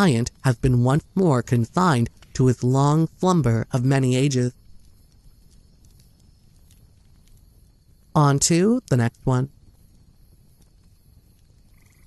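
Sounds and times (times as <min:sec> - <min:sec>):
faint low rumble: 0:00.0 - 0:12.0.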